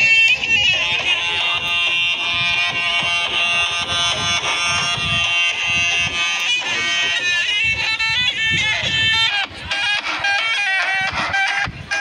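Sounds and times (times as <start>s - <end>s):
drum beats: 0.0s - 12.0s
reedy shawm melody: 0.0s - 12.0s.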